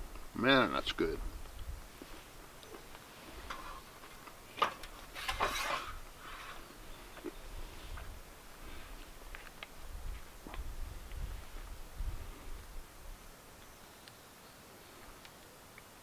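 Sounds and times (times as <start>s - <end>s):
cutlery scraping: 4.6s - 6.7s
light ticks: 15.0s - 16.0s.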